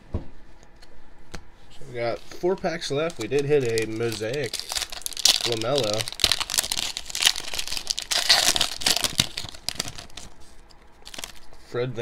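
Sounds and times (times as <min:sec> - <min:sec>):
foil wrapper crinkling: 0:01.9 - 0:11.6.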